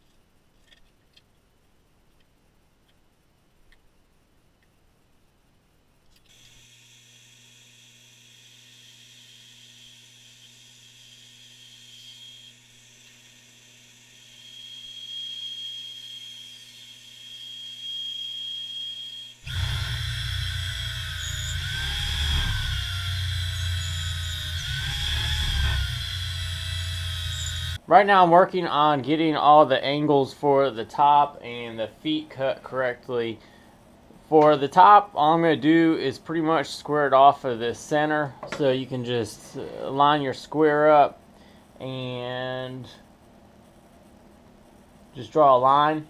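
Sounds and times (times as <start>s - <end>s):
bandsaw whining: 6.3s - 27.8s
cordless drill boring into wood: 6.3s - 27.8s.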